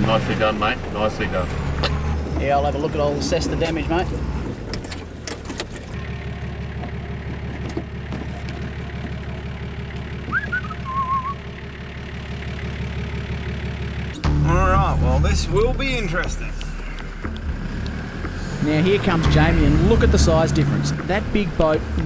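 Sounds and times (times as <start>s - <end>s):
car engine idling: 0.0s - 22.0s
whistled chirp and trill: 10.3s - 11.4s.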